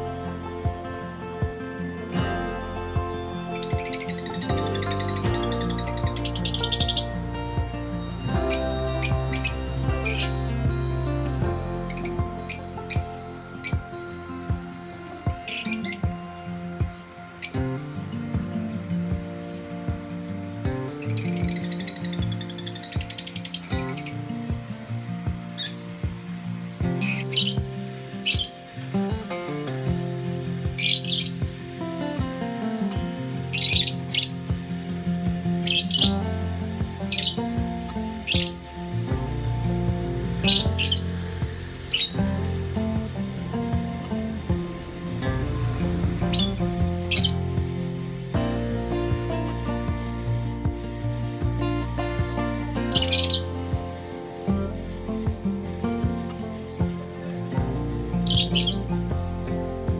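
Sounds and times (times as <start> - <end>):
lovebirds chirping: 0.0 - 24.3, 27.0 - 29.4, 30.5 - 32.6, 33.4 - 59.8
background music: 0.0 - 59.9
birds chattering: 3.4 - 7.3, 30.8 - 31.6, 33.4 - 47.4, 52.8 - 53.5, 58.2 - 59.1.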